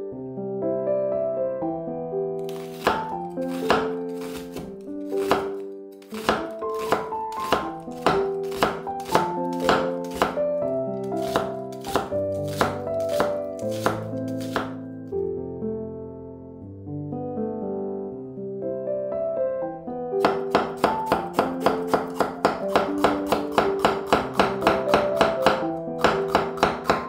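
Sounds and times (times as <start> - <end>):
light piano music: 0.0 - 27.0
knife cutting on wooden board: 2.4 - 10.4, 11.0 - 14.8, 20.2 - 27.0.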